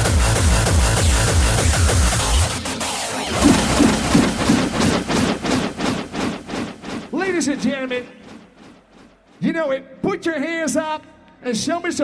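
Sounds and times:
electronic dance music drum hits: 0.0 - 9.7.

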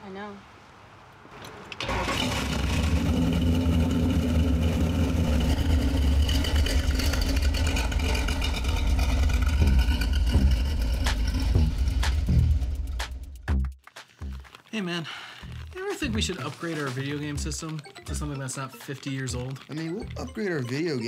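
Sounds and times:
car engine pulling away: 1.2 - 13.5.

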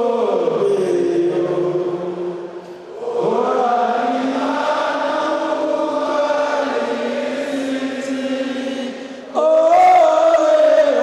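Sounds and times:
choir singing in unison: 2.8 - 11.0.

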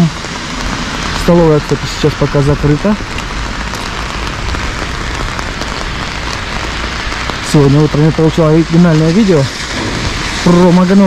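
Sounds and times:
rain on umbrella: 0.0 - 11.0.

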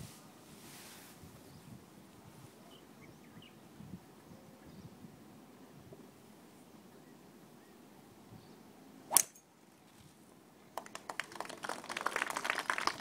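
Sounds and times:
golf club striking ball: 9.1 - 9.4
spectators applauding: 10.8 - 13.0.

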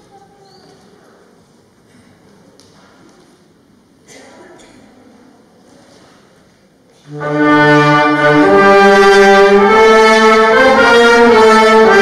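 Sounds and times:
soft voices: 0.0 - 7.0.

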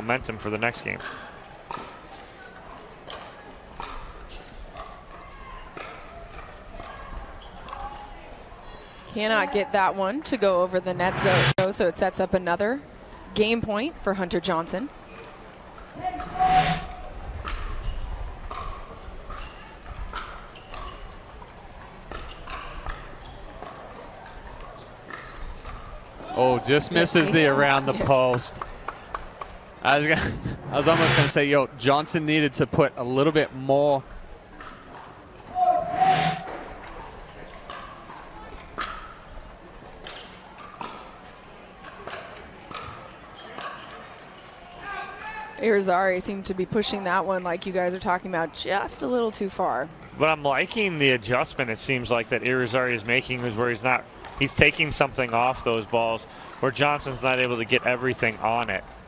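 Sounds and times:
whoosh with brief tone: 10.9 - 11.6, 30.2 - 31.4.

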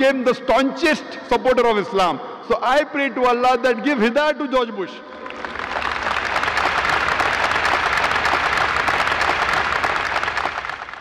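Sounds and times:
large audience applauding: 5.1 - 11.0.

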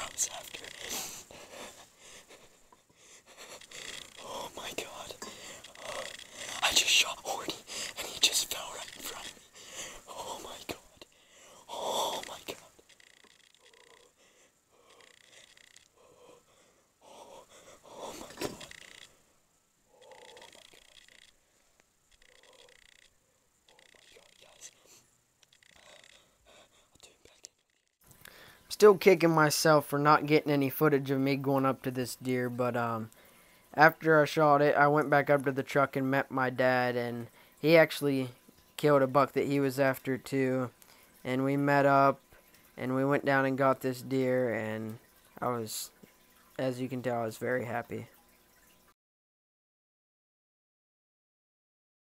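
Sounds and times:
man whispering excitedly: 0.0 - 1.1, 3.6 - 14.1, 17.0 - 19.1, 20.0 - 21.3, 22.2 - 23.0, 23.7 - 25.0, 25.6 - 27.6
man breathing hard: 9.6 - 10.0, 11.1 - 12.0.

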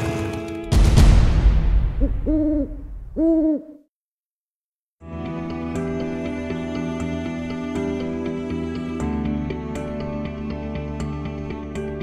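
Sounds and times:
low hoots: 2.0 - 3.8.

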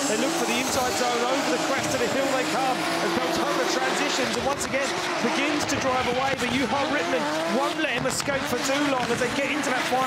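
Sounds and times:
car engines at high revs: 0.0 - 10.0.

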